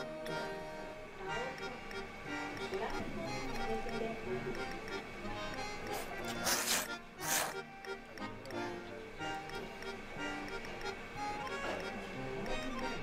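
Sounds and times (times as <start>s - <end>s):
background music with light beat: 0.0s - 13.0s
loud noodle slurps: 6.2s - 7.6s.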